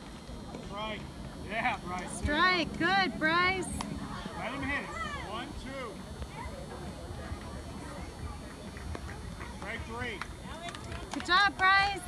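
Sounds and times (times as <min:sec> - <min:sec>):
spectators talking: 0:00.0 - 0:12.0.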